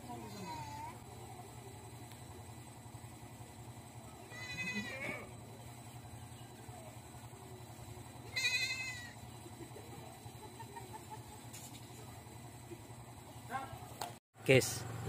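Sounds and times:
goat bleating: 0.2s - 1.0s, 4.3s - 5.3s, 8.3s - 9.2s.

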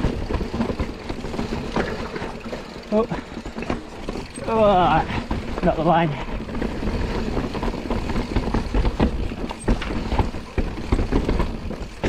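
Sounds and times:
bike knocking and rattling on stones: 0.0s - 12.0s
bike tyres rumbling over rock: 0.0s - 12.0s.

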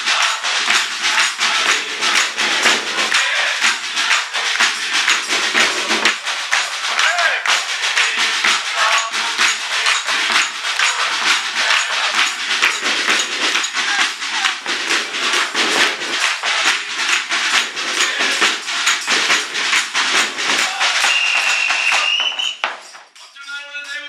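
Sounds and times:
snare and frame drum beating: 0.0s - 23.2s
hand clapping: 0.0s - 24.0s
shrill whistle: 20.6s - 24.0s.

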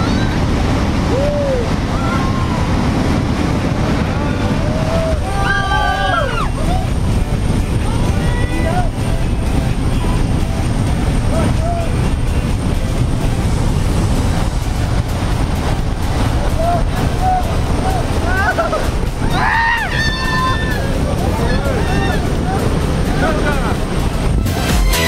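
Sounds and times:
plane engine: 0.0s - 25.0s
wind noise: 0.0s - 25.0s.

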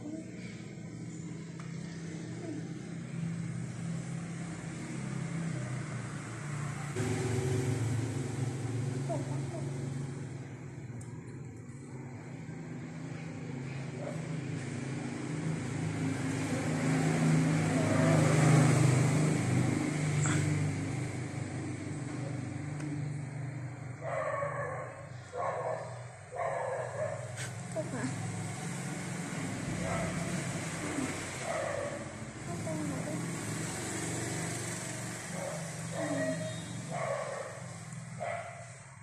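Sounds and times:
vehicle engine passing: 0.0s - 39.0s.

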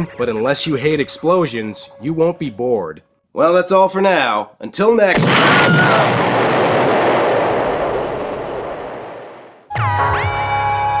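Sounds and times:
explosion rumble: 5.2s - 9.7s.

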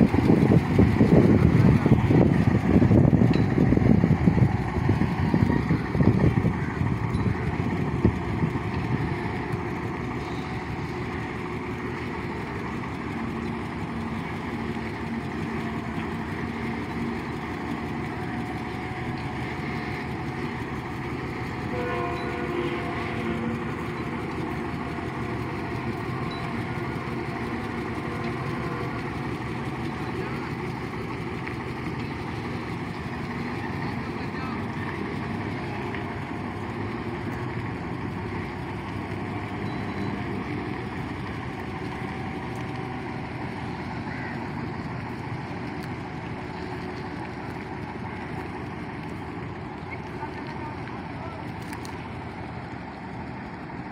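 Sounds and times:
heavy diesel truck engine: 0.0s - 53.9s.

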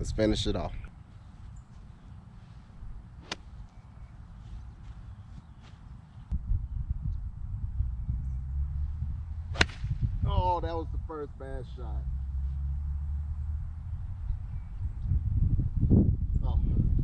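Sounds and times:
golf club striking ball: 3.2s - 3.6s, 9.5s - 10.0s
wind rumble on microphone: 6.2s - 17.0s.

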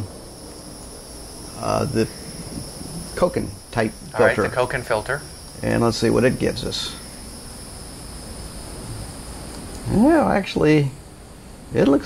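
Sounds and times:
crickets droning: 0.0s - 12.0s
faint background noise: 0.0s - 12.0s.

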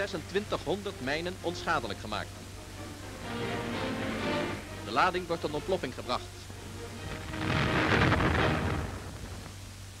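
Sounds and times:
sea mine explosion: 7.2s - 9.5s.

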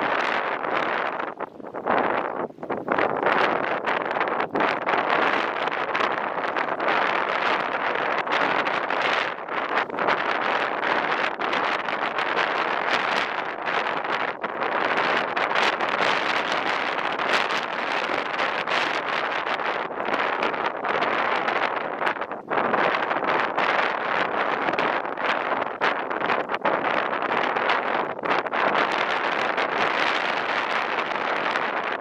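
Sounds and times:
wind buffeting microphone: 0.0s - 32.0s.

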